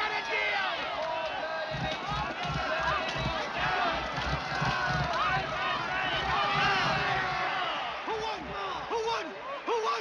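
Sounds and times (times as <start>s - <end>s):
crowd shouting and cheering: 0.0s - 10.0s.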